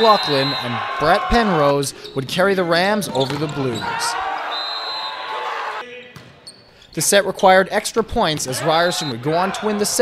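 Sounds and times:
crowd and players' voices echoing: 0.0 - 10.0.

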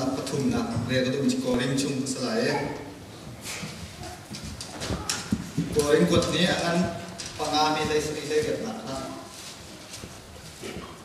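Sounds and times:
man speaking into a microphone: 0.0 - 2.8, 5.7 - 9.3.

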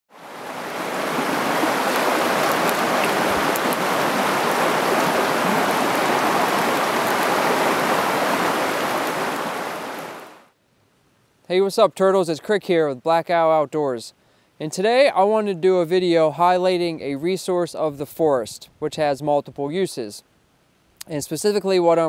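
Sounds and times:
stream water running over rocks: 0.1 - 10.5.

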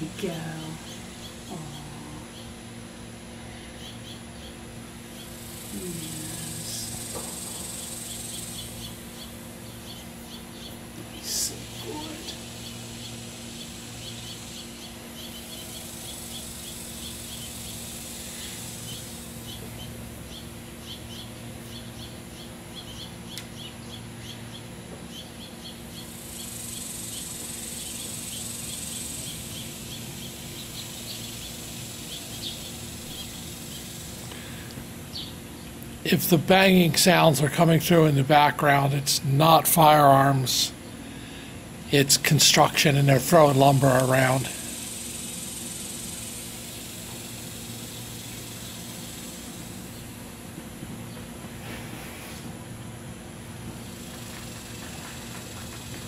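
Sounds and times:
insects chirping: 0.0 - 51.5, 52.6 - 56.0
high buzzing insect chorus: 0.0 - 56.0.

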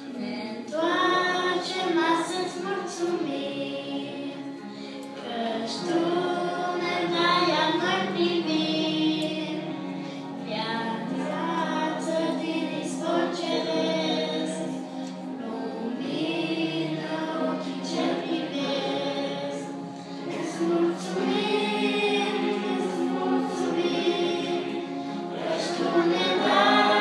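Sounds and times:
group singing a hymn: 0.0 - 27.0.

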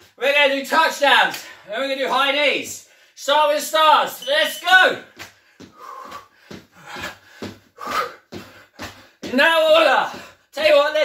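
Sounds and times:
feet landing on wooden floor: 5.1 - 10.7
hard breathing: 5.3 - 9.3, 10.1 - 10.6.

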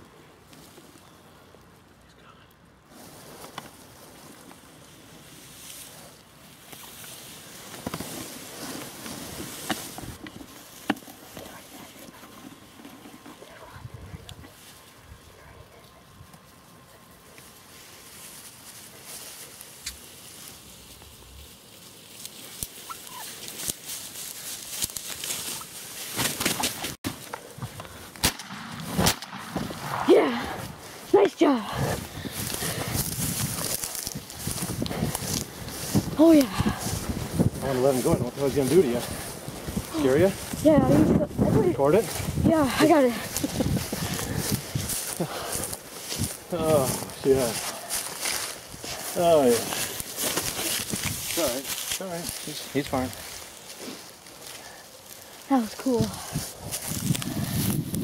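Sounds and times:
rustling of grass and brush: 0.0 - 58.0.

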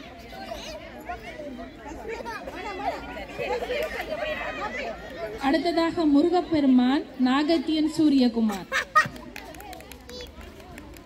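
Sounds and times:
voices chattering: 0.0 - 11.0.

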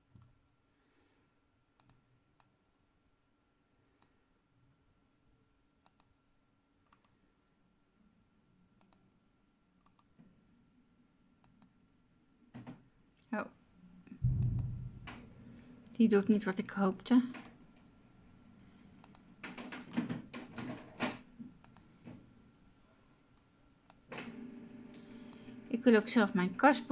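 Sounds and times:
computer mouse clicks: 1.8 - 2.6, 5.8 - 6.2, 6.9 - 7.2, 8.8 - 9.1, 9.8 - 10.2, 11.4 - 11.8, 14.3 - 14.8, 19.0 - 20.2, 21.6 - 21.9, 23.4 - 24.1
knock and low thud: 14.2 - 15.3.

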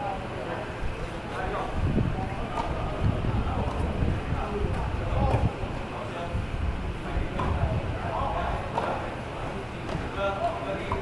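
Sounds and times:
background chatter of voices: 0.0 - 11.0
steady low rumble: 1.7 - 8.6
tennis balls struck by rackets: 7.3 - 7.7, 8.7 - 9.0.

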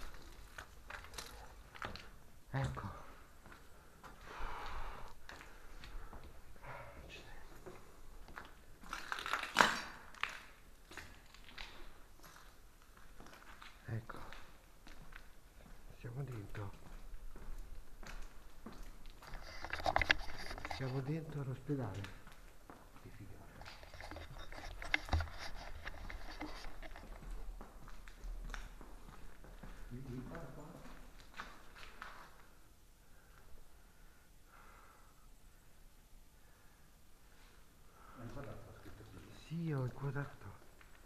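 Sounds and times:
footsteps: 0.0 - 6.8, 7.4 - 32.6.

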